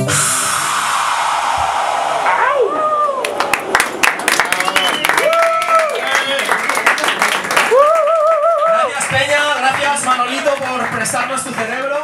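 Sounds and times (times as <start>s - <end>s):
loud electronic noise hiss: 0.0s - 2.9s
voice-like rising and falling cries: 0.4s - 4.4s.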